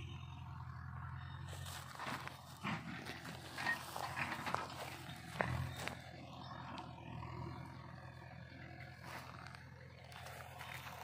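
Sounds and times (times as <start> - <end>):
rustling through dry grass: 1.4 - 11.0.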